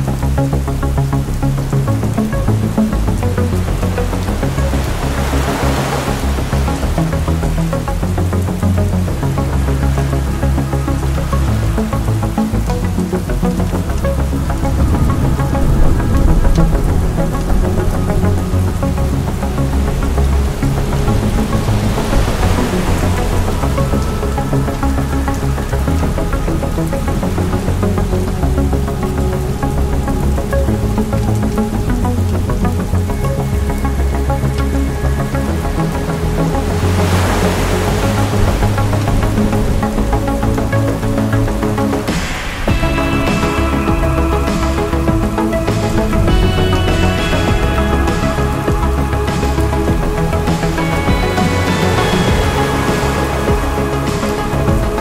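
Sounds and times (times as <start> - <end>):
broad hiss: 0.0 - 55.0
dark ambient synth drones: 0.0 - 55.0
rain noise: 0.0 - 55.0.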